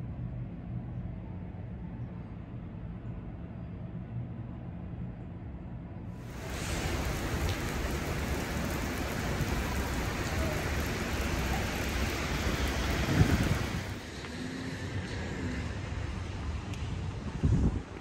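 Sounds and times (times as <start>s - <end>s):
rain on wet pavement: 6.2s - 16.1s.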